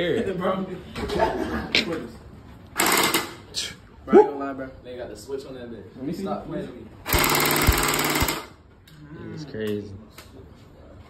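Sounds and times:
toy blaster mechanical rattle: 7.1 - 8.6.

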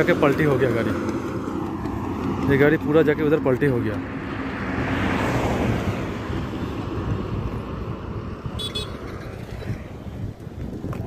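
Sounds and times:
rush of traffic: 0.0 - 11.0
vehicle passing: 0.0 - 11.0
wind on microphone: 5.6 - 11.0.

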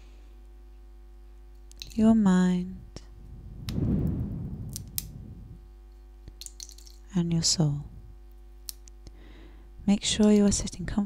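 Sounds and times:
pill capsule clicking apart: 6.3 - 7.0.

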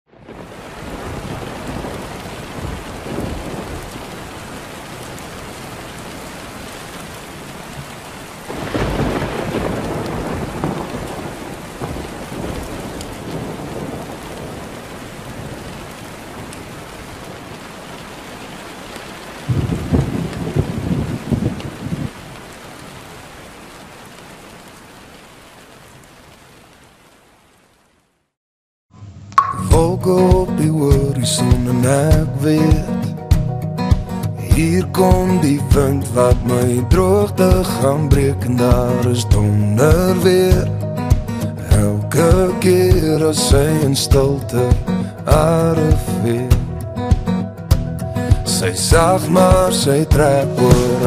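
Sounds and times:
thunder rolling: 0.1 - 5.6, 8.5 - 16.9, 19.5 - 22.3
steady rain falling: 0.1 - 28.4, 29.7 - 51.0.

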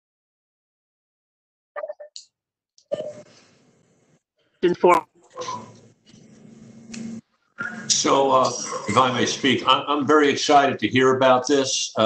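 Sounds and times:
faint voice: 7.6 - 9.9.

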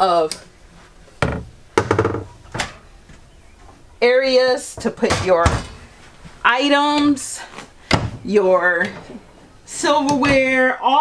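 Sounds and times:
cabinet doors knocking and clicking: 1.2 - 2.7.

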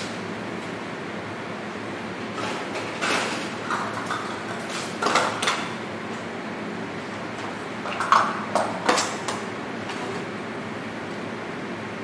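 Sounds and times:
kitchen ventilation hum: 0.0 - 12.0.

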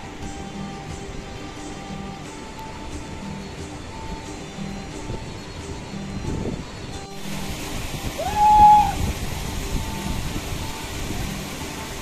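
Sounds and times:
background music: 0.0 - 12.0
stream running over rocks: 0.0 - 12.0.

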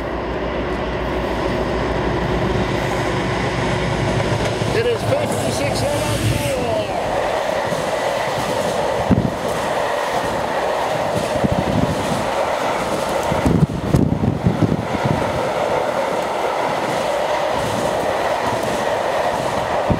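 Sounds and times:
train wheels rumbling on rail: 0.0 - 19.9.

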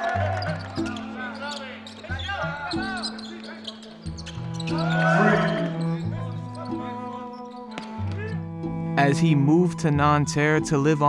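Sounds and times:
voices: 0.0 - 8.4
background music with bass notes: 4.1 - 11.0.

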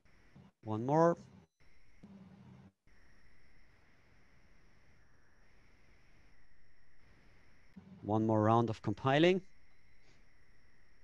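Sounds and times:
thin steady hum: 0.0 - 11.0.

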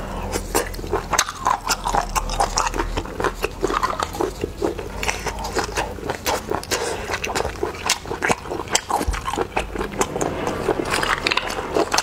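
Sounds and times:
wet chewing and smacking: 0.0 - 12.0.

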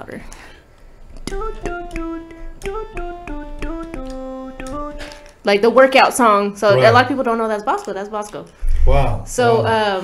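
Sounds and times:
synthesizer melody through talk box: 1.4 - 5.1.

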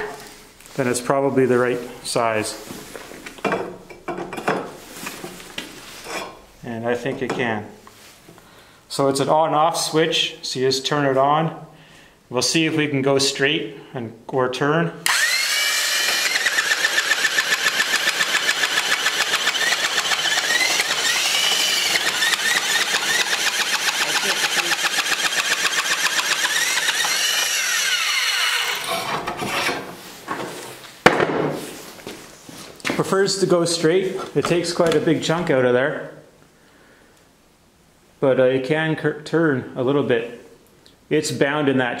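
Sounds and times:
electric nibbler motor whining: 15.0 - 28.9.

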